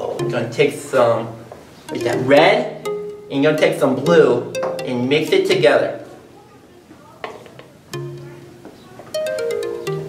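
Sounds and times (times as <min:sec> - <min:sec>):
pizzicato strings music: 0:00.0 - 0:06.4, 0:07.9 - 0:10.0.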